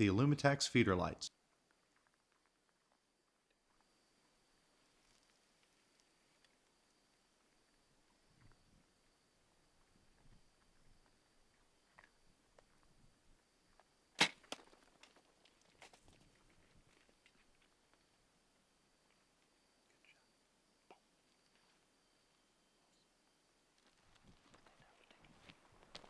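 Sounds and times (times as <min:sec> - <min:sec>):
bow shot snap: 0:14.2 - 0:14.6
weaker crack: 0:14.2 - 0:15.2
faint steady high tone: 0:19.8 - 0:23.3.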